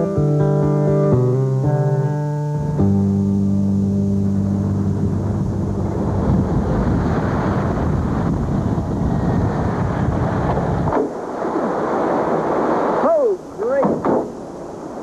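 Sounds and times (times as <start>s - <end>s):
truck engine running: 3.7s - 10.9s.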